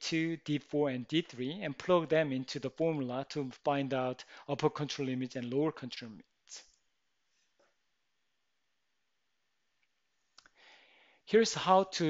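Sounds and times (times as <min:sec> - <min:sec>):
soft hiss: 0:05.8 - 0:12.0.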